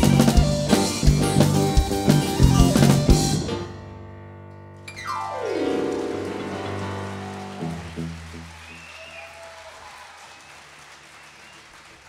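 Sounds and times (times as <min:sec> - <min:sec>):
struck notes: 0:00.0 - 0:08.6
audience applause: 0:05.2 - 0:12.0.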